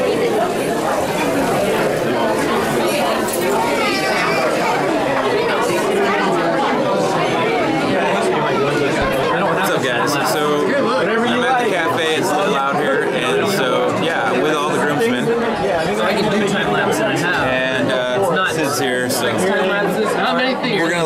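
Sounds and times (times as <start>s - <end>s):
chatter of many diners: 0.0s - 21.0s.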